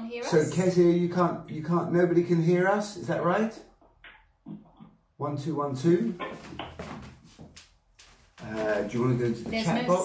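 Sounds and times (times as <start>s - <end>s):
man speaking into a microphone: 8.4s - 10.0s.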